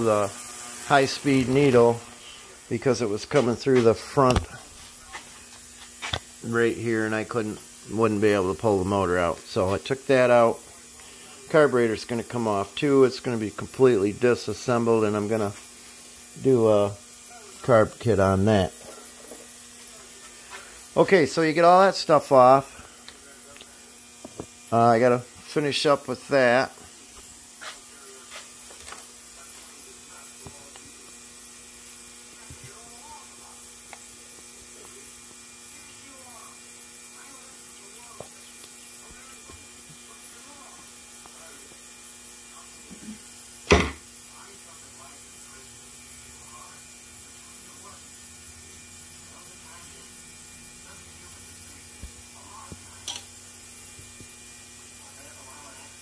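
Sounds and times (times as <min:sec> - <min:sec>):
parts cleaner electric hum: 0:00.0 - 0:56.0.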